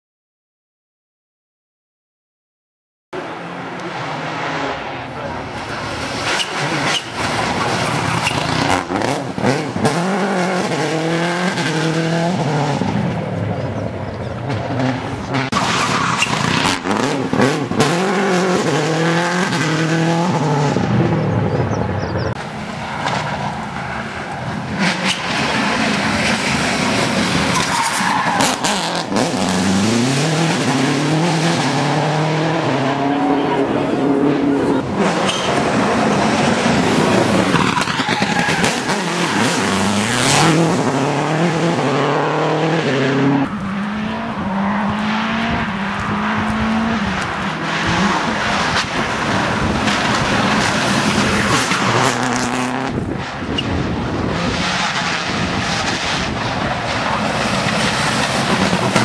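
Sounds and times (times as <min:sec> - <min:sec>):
rally car engine at full throttle: 0:03.2 - 0:59.0.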